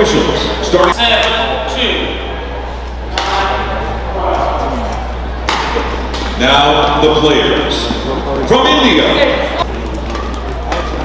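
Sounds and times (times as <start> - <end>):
steady low hum: 0.0 - 11.0
badminton racket hitting shuttlecock: 3.1 - 3.7, 5.4 - 6.4.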